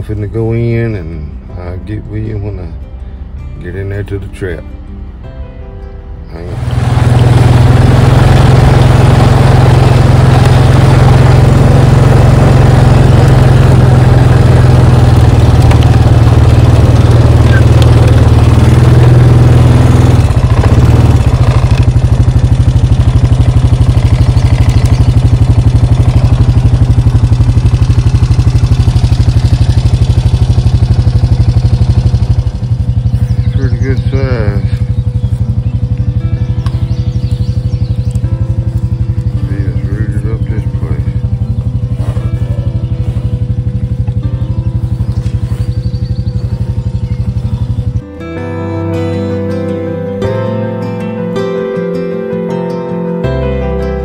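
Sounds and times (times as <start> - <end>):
off-road vehicle engine: 0.0 - 5.2, 6.2 - 54.0.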